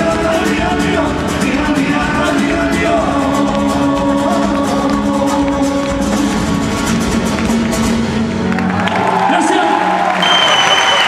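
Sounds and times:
strummed acoustic guitars: 0:00.0 - 0:08.8
drums: 0:00.0 - 0:08.9
bass: 0:00.0 - 0:11.0.

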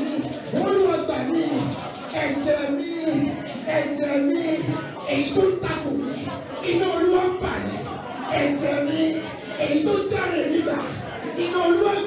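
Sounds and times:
congregation singing: 0:00.0 - 0:12.0.

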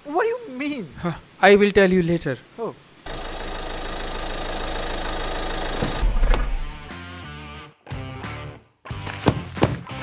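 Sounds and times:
car engine running: 0:03.1 - 0:07.0.

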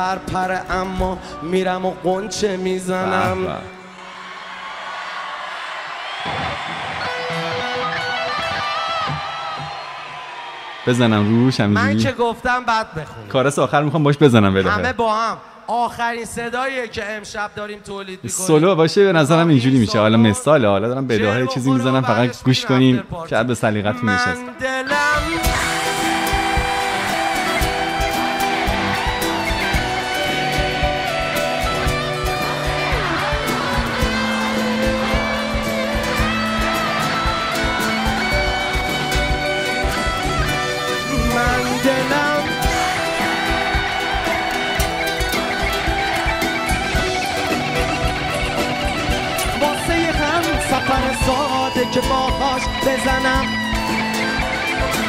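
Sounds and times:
live concert music: 0:00.0 - 0:55.0
electric guitar lead line: 0:02.9 - 0:04.6, 0:06.2 - 0:10.2, 0:23.9 - 0:55.0.

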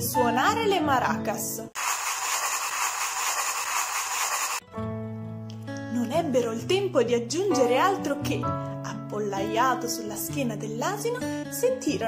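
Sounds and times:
background music with held notes: 0:04.7 - 0:12.0.

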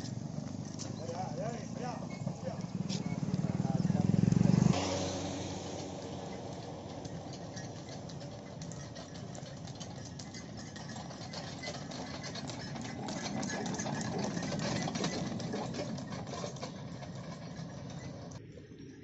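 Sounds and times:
cart wheels rattling on road: 0:00.0 - 0:19.0.

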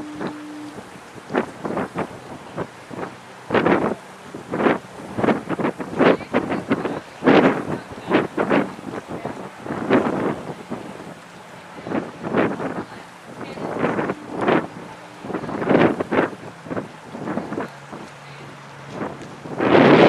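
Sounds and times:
faint low hum of boat engines: 0:00.0 - 0:20.0
wind buffeting microphone: 0:00.0 - 0:20.0.

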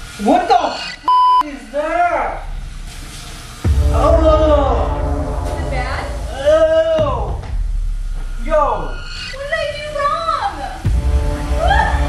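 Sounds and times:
censor bleep: 0:00.7 - 0:01.4.

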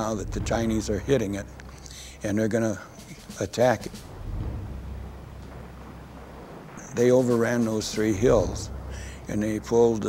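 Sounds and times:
low rumble of distant explosions: 0:00.0 - 0:10.0.

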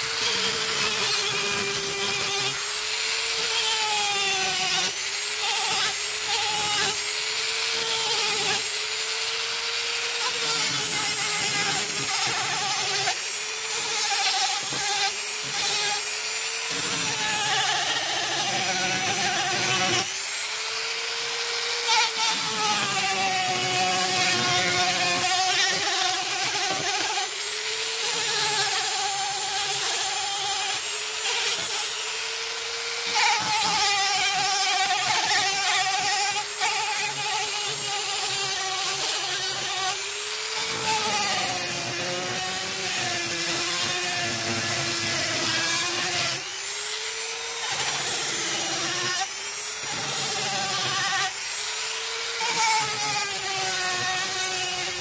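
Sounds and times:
rotary tool sanding wood: 0:00.0 - 0:55.0.

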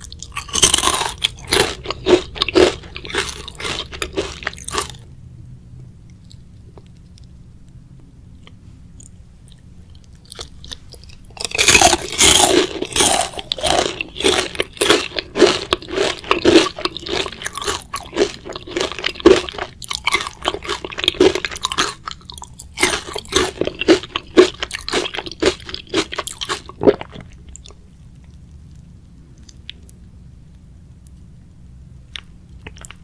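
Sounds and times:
crunching chewing of fried chicken: 0:00.0 - 0:05.1, 0:09.0 - 0:30.0, 0:32.0 - 0:33.0.

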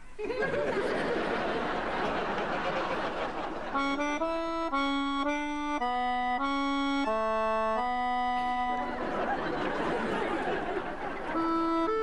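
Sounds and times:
accordion playing chords: 0:01.1 - 0:12.0.

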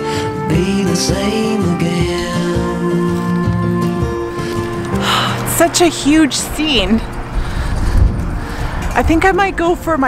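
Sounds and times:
wind buffeting microphone: 0:04.2 - 0:10.0.

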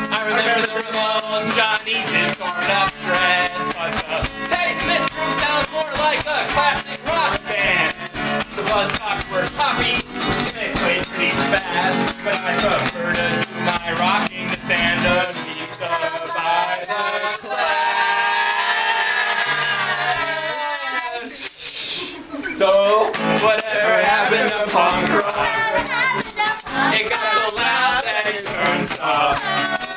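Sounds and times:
man singing: 0:00.0 - 0:20.4, 0:22.5 - 0:29.9
acoustic guitar strumming: 0:00.0 - 0:21.2, 0:23.0 - 0:29.9
small bells jingling: 0:00.0 - 0:22.1, 0:23.3 - 0:29.9.

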